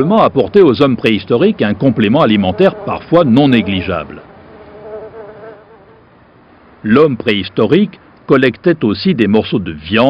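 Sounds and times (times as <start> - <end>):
flying insects buzzing: 2.0 - 6.1.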